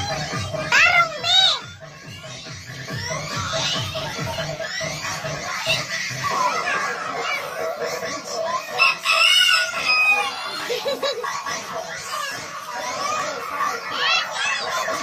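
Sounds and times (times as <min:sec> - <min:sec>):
background music: 0:00.0 - 0:15.0
children's voices: 0:00.0 - 0:15.0
rooster crowing: 0:08.6 - 0:10.7.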